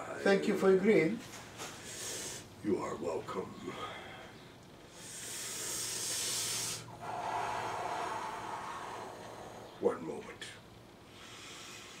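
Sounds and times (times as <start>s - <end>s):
person breathing deeply: 1.8s - 2.5s, 3.6s - 9.9s, 11.0s - 12.0s.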